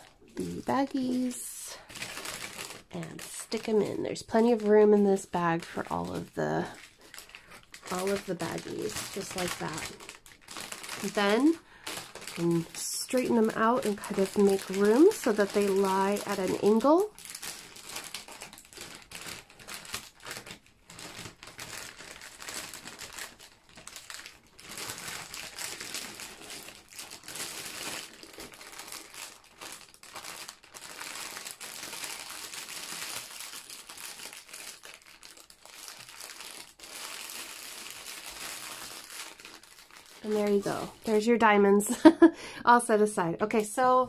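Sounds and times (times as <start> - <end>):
plastic bags crinkling: 0.0 - 42.2.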